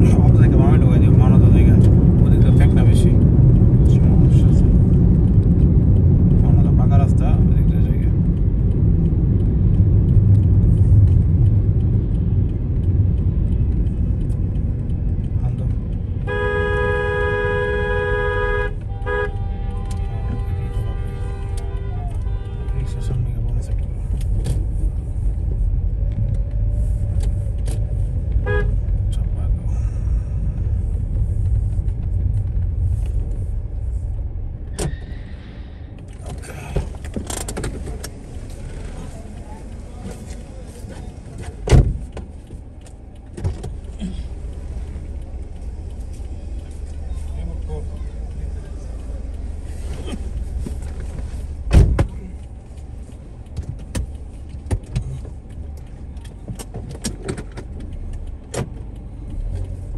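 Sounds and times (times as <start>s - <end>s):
car rumble from inside cabin: 0.0s - 59.9s
car horn: 16.2s - 23.1s, 28.4s - 28.8s.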